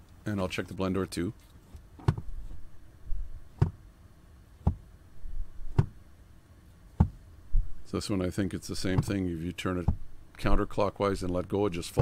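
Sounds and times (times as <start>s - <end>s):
plastic door knocking against stops: 5.8s - 6.0s.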